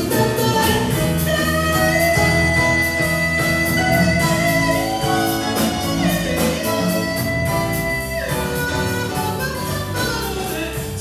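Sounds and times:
bass: 0.0s - 11.0s
drums with cymbal: 0.0s - 11.0s
piano: 0.0s - 11.0s.

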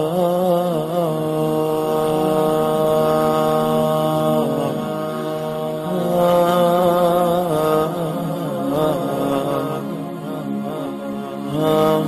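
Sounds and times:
man singing long held notes: 0.0s - 12.0s.

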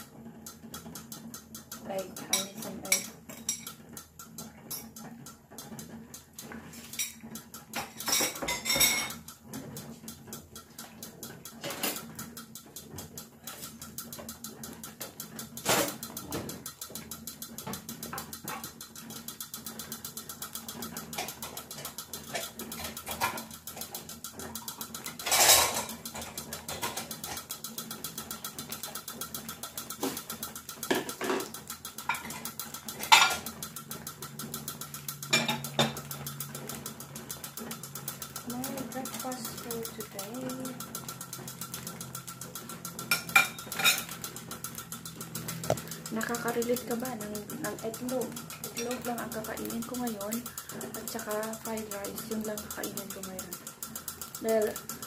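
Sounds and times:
eggs boiling in saucepan: 0.0s - 55.0s
omelette frying in oil: 0.0s - 55.0s.

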